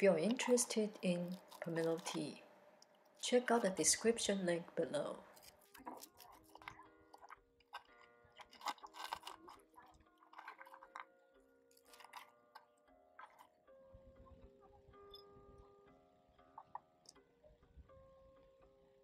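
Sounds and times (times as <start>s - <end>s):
tea block crackling and crunching: 0.0s - 2.9s, 5.2s - 13.5s
soft background music: 0.0s - 19.0s.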